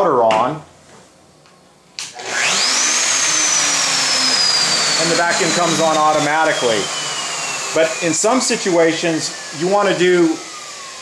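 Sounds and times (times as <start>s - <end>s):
shop vacuum motor whine: 2.0s - 11.0s.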